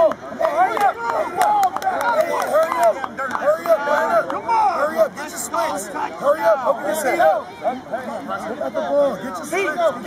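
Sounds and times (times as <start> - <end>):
voices shouting and talking: 0.0 - 10.0.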